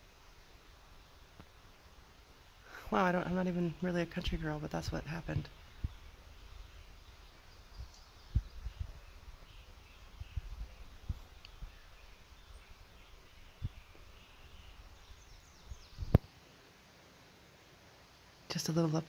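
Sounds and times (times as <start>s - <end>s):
faint bird chirps: 5.5s - 16.6s
short low thumps: 7.8s - 9.5s.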